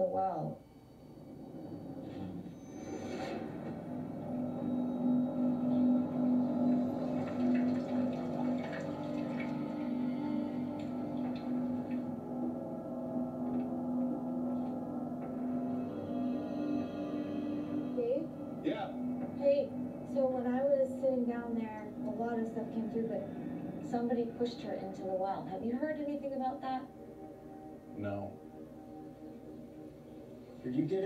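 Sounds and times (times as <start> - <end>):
dark ambient drone: 0.0 - 31.0.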